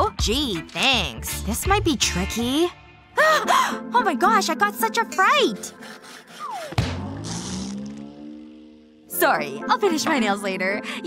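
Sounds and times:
rising tone: 0:06.8 - 0:09.1.

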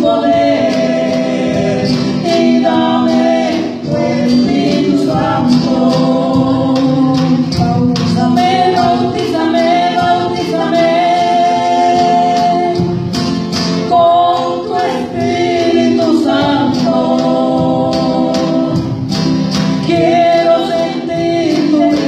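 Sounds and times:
band playing: 0:00.0 - 0:22.0
drum kit beat: 0:00.0 - 0:22.0
people singing: 0:00.0 - 0:22.0.

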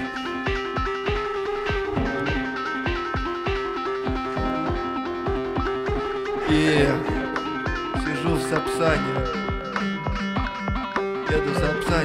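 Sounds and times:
kick drum beat: 0:00.0 - 0:12.0
plucked synth melody: 0:00.0 - 0:12.0.

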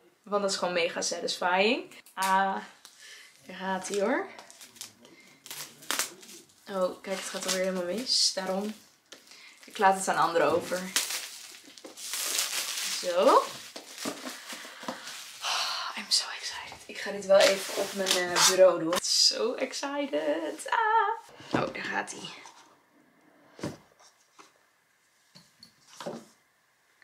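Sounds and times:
plastic film tearing and crinkling: 0:03.8 - 0:15.4, 0:17.2 - 0:18.7.

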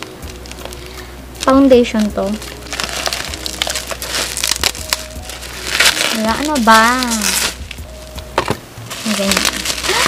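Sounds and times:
bubble wrap crinkling: 0:00.0 - 0:10.0.

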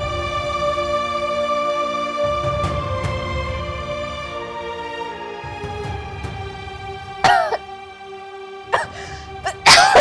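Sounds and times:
woman coughing: 0:07.2 - 0:07.6, 0:08.8 - 0:10.0.

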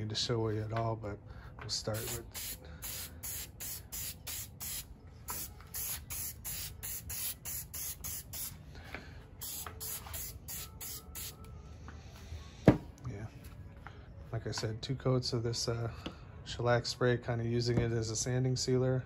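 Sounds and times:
aerosol can spraying: 0:01.9 - 0:08.6, 0:09.4 - 0:11.4.

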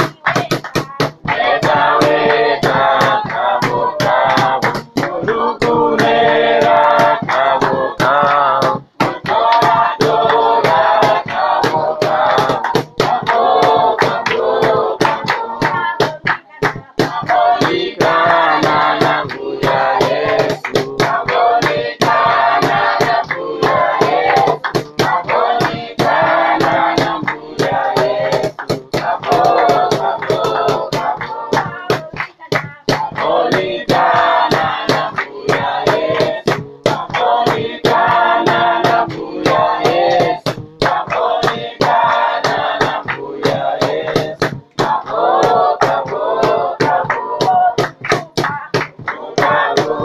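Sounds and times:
group singing in chorus: 0:00.0 - 0:50.0
sharp claps: 0:00.0 - 0:50.0
sharp percussive beats: 0:00.0 - 0:50.0.

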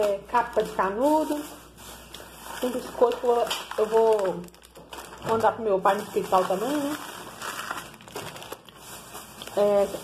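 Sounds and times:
plastic bags rustling: 0:00.0 - 0:10.0.

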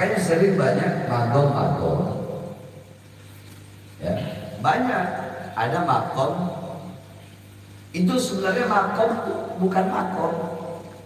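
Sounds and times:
man talking over amplification: 0:00.0 - 0:02.4, 0:04.0 - 0:06.7
steady low hum: 0:00.0 - 0:11.0.

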